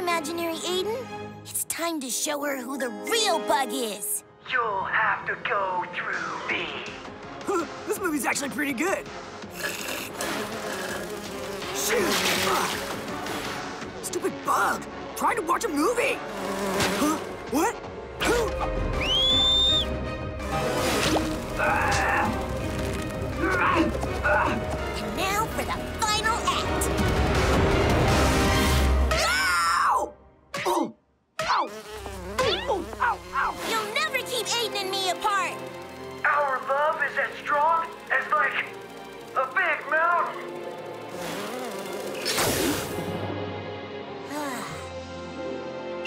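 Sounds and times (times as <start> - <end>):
cartoon bee buzzing: 9.4 - 13.9, 15.7 - 17.6, 20.4 - 27.1, 31.4 - 43.2.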